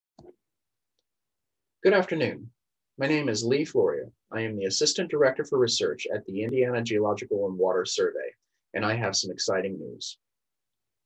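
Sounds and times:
man talking: 1.8s - 10.2s.

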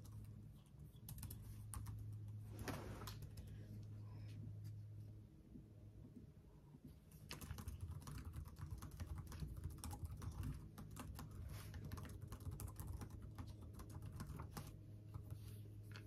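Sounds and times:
fast typing on keyboard: 0.0s - 2.2s, 7.2s - 15.3s.

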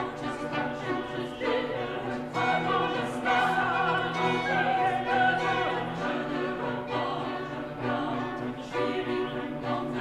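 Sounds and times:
choir singing sustained chords: 0.0s - 10.0s.

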